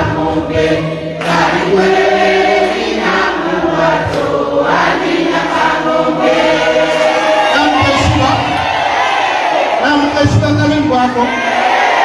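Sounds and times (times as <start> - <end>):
group of voices singing: 0.0 - 9.9.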